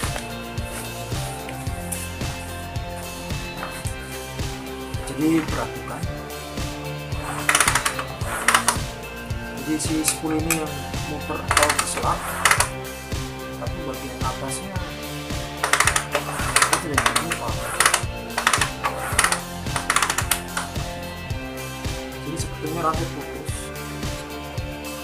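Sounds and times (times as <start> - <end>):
background music: 0.0 - 25.0
rapid mechanical clicking: 7.2 - 8.9, 11.5 - 12.7, 15.6 - 20.8.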